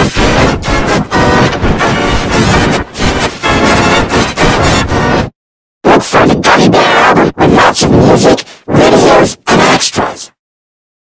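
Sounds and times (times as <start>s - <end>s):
harsh distorted audio bursts: 0.0s - 10.3s.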